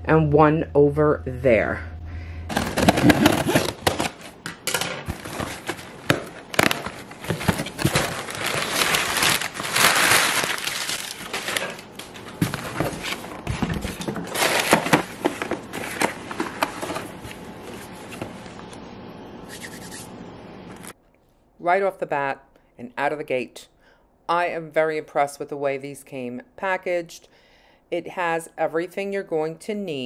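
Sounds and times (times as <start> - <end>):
cardboard flaps opening: 2.5 - 4.4, 5.0 - 18.4
paper packing crinkling: 2.5 - 18.6.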